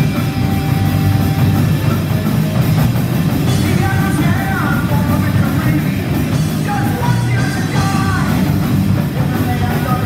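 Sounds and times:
heavy metal band playing: 0.0s - 10.0s.

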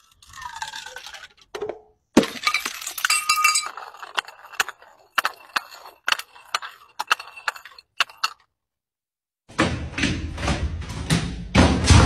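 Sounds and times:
glass bottle smashing on concrete: 2.2s - 8.4s
glass pieces clinking: 2.2s - 8.5s.

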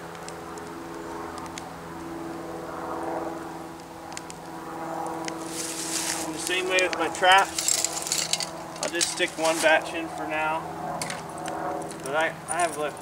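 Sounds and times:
hiss of noise: 5.4s - 6.4s.

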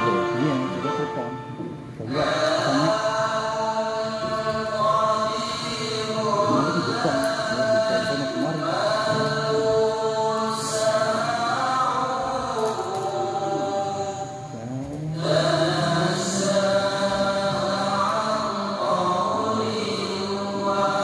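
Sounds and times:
boys chanting together: 2.0s - 21.0s.

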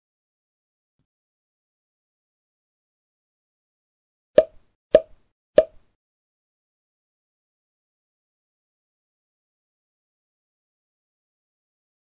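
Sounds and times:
pop sound effects: 4.4s - 5.8s.

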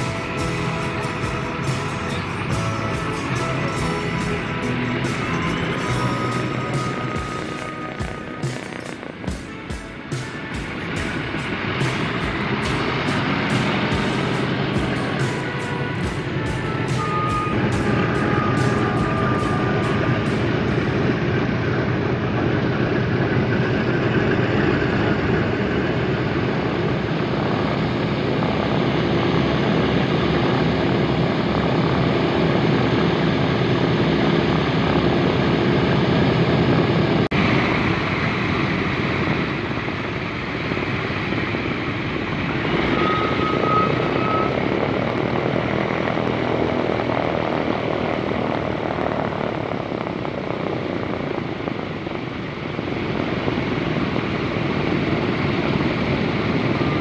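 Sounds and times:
radial aircraft engines running: 0.0s - 57.0s.

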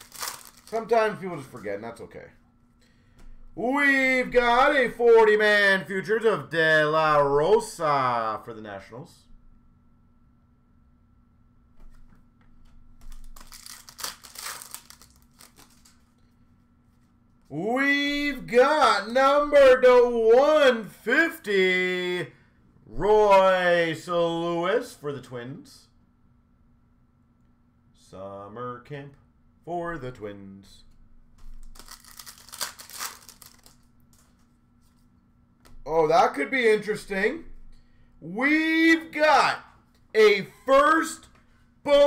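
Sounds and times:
foil wrapper crinkling and tearing: 0.0s - 1.0s, 13.1s - 16.1s, 31.6s - 33.9s.

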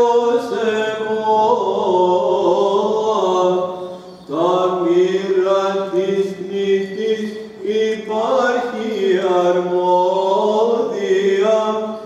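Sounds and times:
singer breathing: 3.7s - 4.3s.

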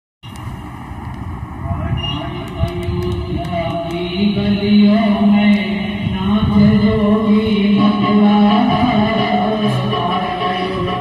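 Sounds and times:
person singing devotional song: 2.9s - 11.0s.

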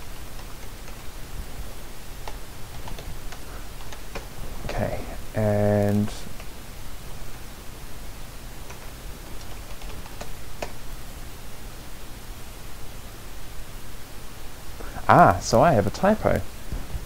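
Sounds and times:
microphone hiss: 0.0s - 17.0s
computer keyboard keystrokes: 0.1s - 1.1s, 2.2s - 4.8s, 8.6s - 10.8s.

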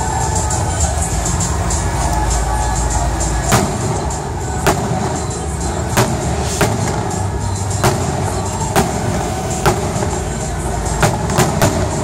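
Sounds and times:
fireworks bangs: 3.4s - 12.0s.

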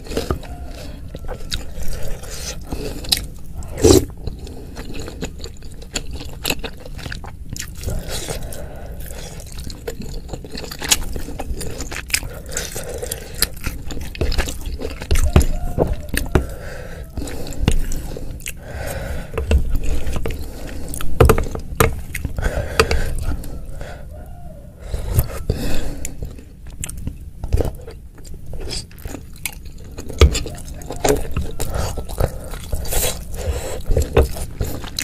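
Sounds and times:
chewing and biting: 0.0s - 23.8s, 24.9s - 35.0s.

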